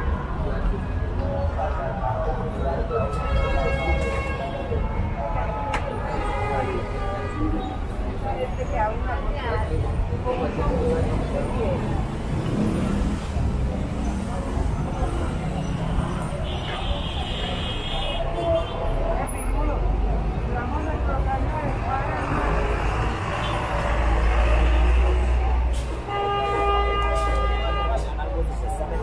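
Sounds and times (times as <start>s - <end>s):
people talking: 0.0s - 29.0s
street traffic: 0.0s - 29.0s
vehicle horn: 26.0s - 28.1s.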